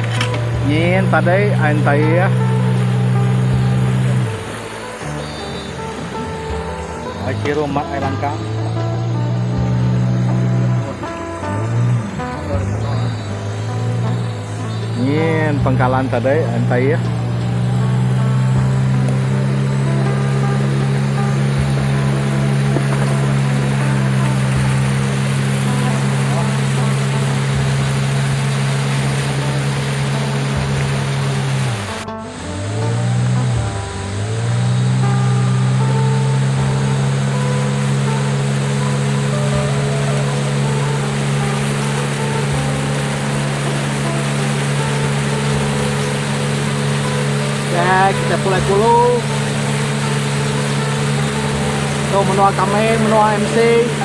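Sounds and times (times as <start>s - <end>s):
outboard motor running: 0.0s - 54.0s
water rushing along hull: 0.0s - 54.0s.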